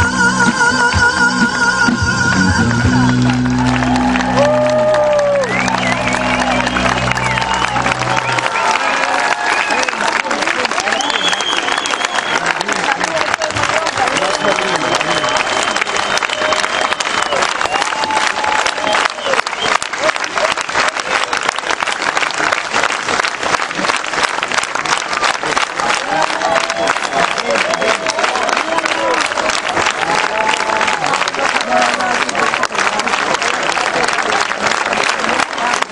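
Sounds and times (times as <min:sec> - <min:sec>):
people cheering and calling out: 0:01.8 - 0:21.8, 0:24.8 - 0:35.9
audience applauding: 0:02.3 - 0:35.9.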